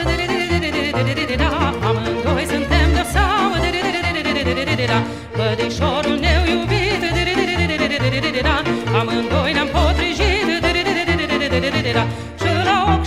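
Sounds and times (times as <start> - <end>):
folk music lead melody with vibrato: 0.0 - 13.0.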